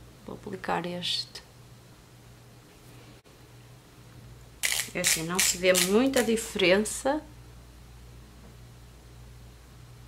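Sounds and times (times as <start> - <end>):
low electrical hum: 0.0 - 10.0
woman speaking: 0.2 - 1.5, 4.9 - 7.3.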